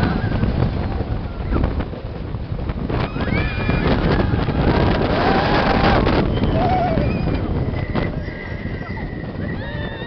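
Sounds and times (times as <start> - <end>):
roller coaster rumble and rattle: 0.0 - 10.0
wind on microphone: 0.0 - 10.0.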